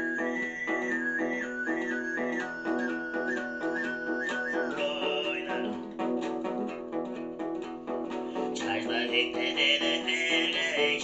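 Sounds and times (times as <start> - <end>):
throat singing with whistling overtone: 0.0 - 5.8
lute strummed: 0.0 - 11.0.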